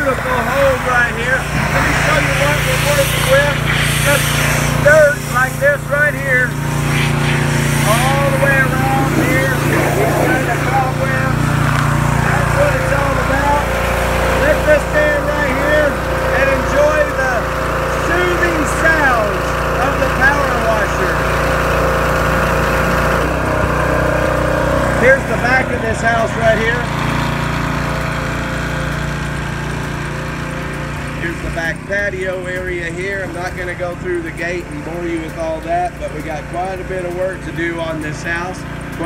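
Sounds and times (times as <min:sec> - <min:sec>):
pressure washer engine running: 0:00.0 - 0:39.0
water spray hissing: 0:00.1 - 0:16.3.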